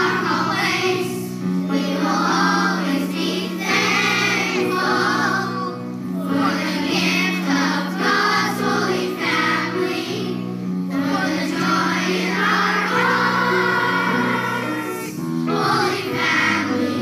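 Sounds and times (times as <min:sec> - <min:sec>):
choir singing: 0:00.0 - 0:17.0
instrumental accompaniment: 0:00.0 - 0:17.0.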